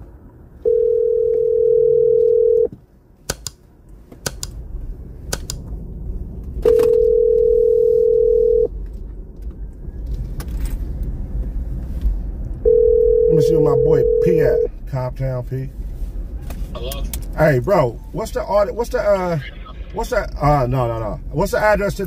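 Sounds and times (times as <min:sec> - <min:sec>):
telephone ringback tone: 0:00.6 - 0:02.7, 0:06.6 - 0:08.7, 0:12.7 - 0:14.7
sharp clicks: 0:03.3 - 0:03.6, 0:04.2 - 0:04.6, 0:05.3 - 0:05.7.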